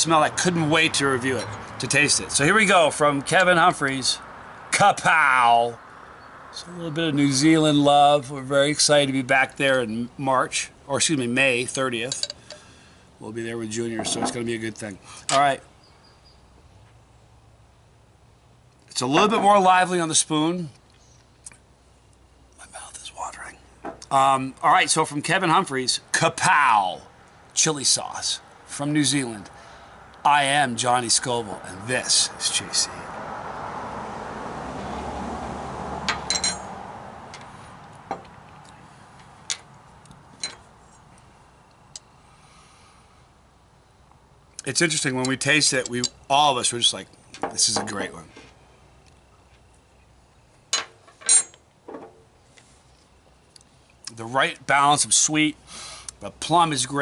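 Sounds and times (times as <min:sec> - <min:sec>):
vehicle passing: 0:00.0 - 0:08.5, 0:28.2 - 0:43.2
ringing clink: 0:36.1 - 0:36.7, 0:50.7 - 0:51.6
faint steady hiss: 0:37.3 - 0:57.0.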